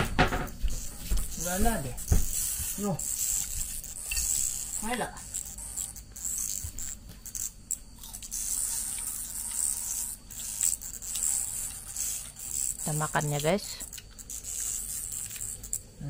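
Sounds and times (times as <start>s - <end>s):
night insects chorus: 0.0s - 16.0s.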